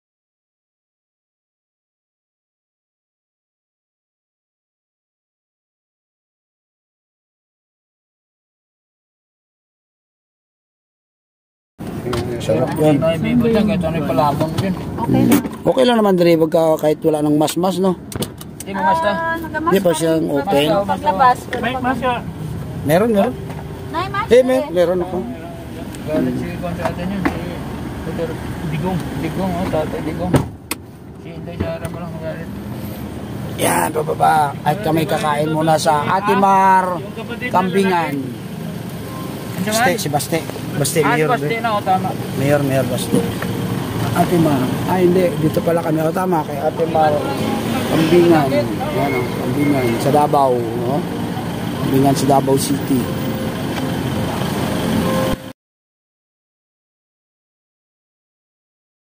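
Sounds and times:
rush of outside noise: 11.8 - 55.5
street noise: 11.8 - 55.5
car door thudding shut: 30.2 - 30.8
vehicle engine running: 32.0 - 55.4.

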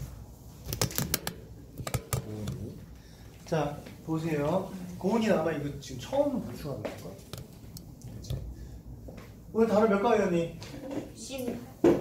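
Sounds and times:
sharp clicks and taps: 0.7 - 2.6.

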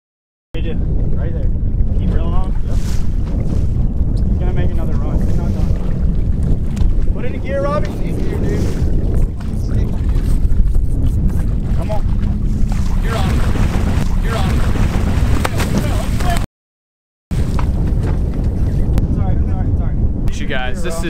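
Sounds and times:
wind buffeting microphone: 0.6 - 16.4, 17.3 - 21.0.

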